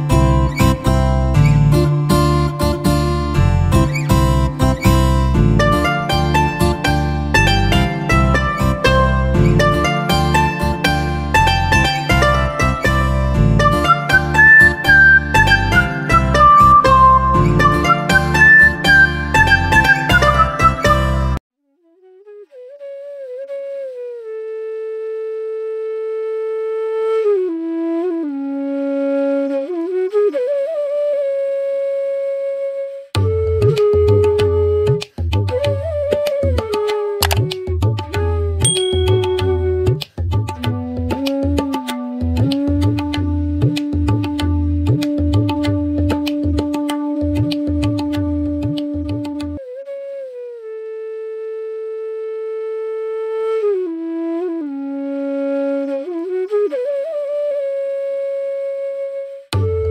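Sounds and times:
flute holding long note: 11.7s - 40.0s, 49.5s - 59.9s.

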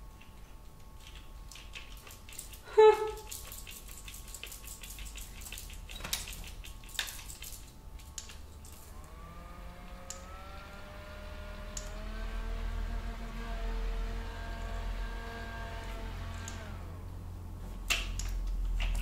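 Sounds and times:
handheld electric fan whirring: 0.0s - 19.0s.

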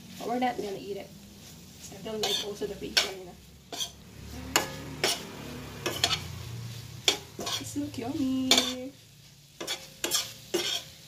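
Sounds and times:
faint sizzle: 0.0s - 11.0s
metal utensil scraping frying pan: 0.1s - 11.0s.

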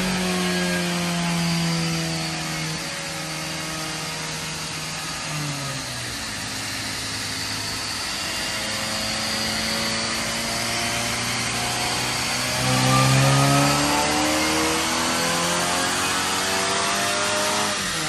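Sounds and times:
car engine revving on dyno: 0.0s - 18.0s.

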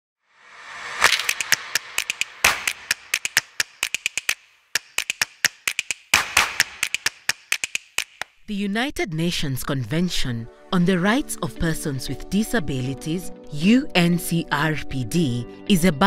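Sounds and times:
whooshes: 0.3s - 2.9s
sharp clicks and taps: 1.0s - 8.4s.

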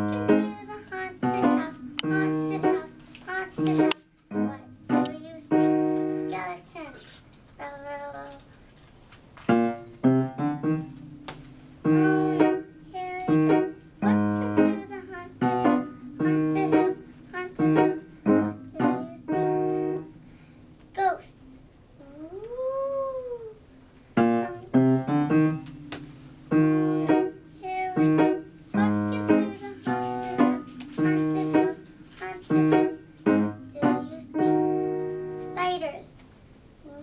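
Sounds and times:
piano chord: 0.0s - 3.0s, 3.6s - 6.5s, 9.5s - 20.2s, 24.2s - 35.7s
child singing: 0.0s - 8.5s, 11.8s - 20.2s, 21.0s - 21.4s, 24.4s - 24.8s, 26.5s - 36.2s.

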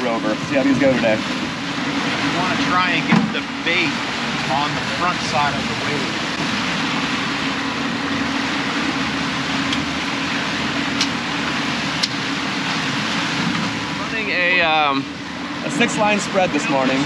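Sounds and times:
outboard motors droning: 0.0s - 17.0s
wake rushing: 0.0s - 17.0s
wind: 0.0s - 17.0s.

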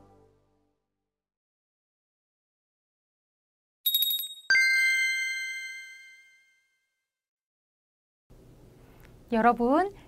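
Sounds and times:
bell-like chime: 3.9s - 6.8s.

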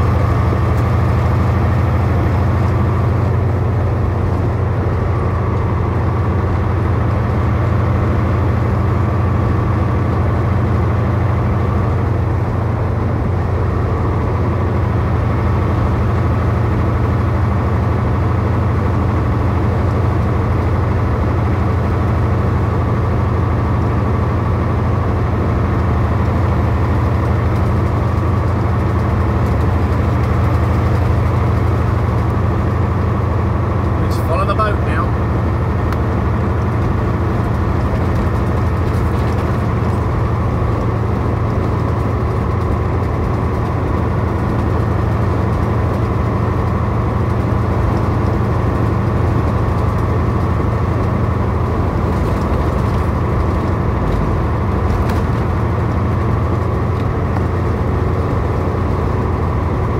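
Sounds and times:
road noise: 0.0s - 59.9s
truck engine drone: 0.0s - 59.9s.

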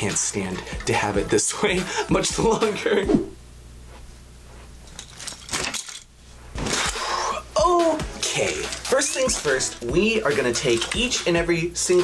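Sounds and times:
low steady hum: 0.0s - 12.0s
light clinking and rattling: 4.8s - 6.1s.

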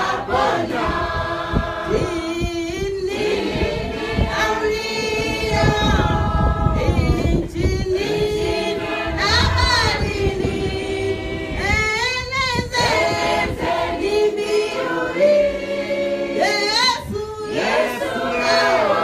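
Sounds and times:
congregation singing a hymn: 0.0s - 19.0s
woman singing into microphone: 4.2s - 10.6s, 11.5s - 14.7s, 16.4s - 17.6s.

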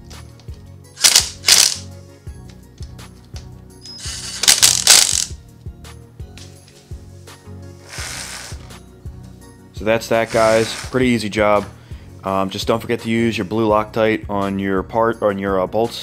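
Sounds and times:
background music: 0.0s - 16.0s
cordless power driver running: 4.0s - 4.6s, 7.9s - 8.7s.

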